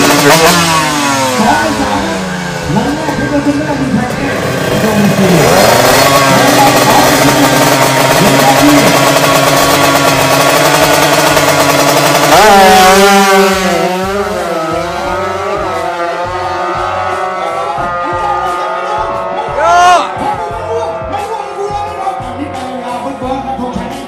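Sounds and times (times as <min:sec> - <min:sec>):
drag racing motorcycle engine: 0:00.0 - 0:24.0.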